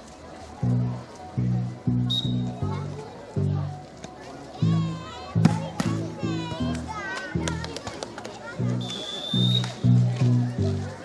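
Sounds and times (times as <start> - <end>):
children playing: 0.0 - 11.0
music with pulsing bass: 0.4 - 4.0, 4.6 - 7.7, 8.5 - 11.0.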